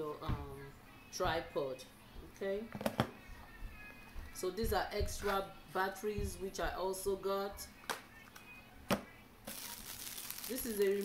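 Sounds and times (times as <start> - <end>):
plastic packaging rustling: 9.5 - 11.0.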